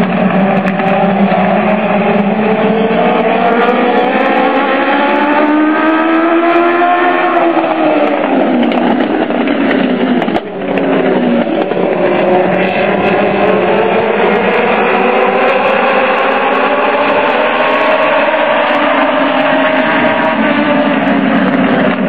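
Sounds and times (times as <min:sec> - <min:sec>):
race car engines droning: 0:00.0 - 0:22.0.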